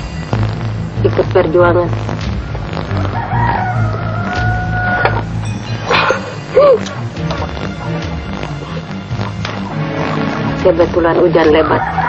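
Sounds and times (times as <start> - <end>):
low background music: 0.0 - 12.0
rooster crowing: 3.0 - 5.2, 11.6 - 12.0.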